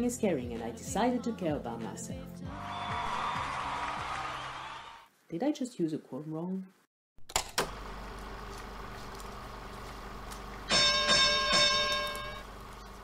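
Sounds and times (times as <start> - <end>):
bright ringing notes: 10.7 - 12.6.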